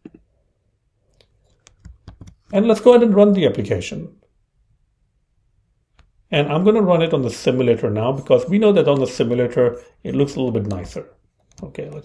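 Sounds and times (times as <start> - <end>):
computer keys clicking: 1.1 - 2.5.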